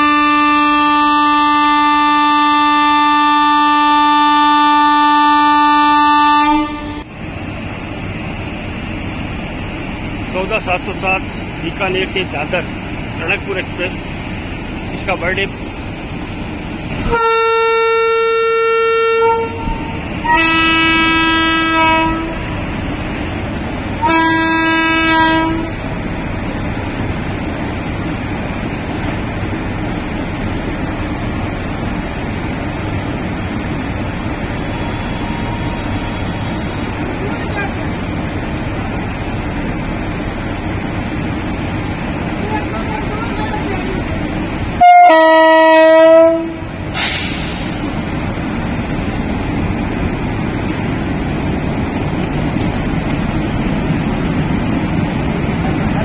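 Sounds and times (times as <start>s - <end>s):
locomotive horn blasts: 0.0s - 7.1s, 17.1s - 22.6s, 24.0s - 25.8s, 34.7s - 37.0s, 44.8s - 47.7s
locomotive hum: 0.0s - 56.0s.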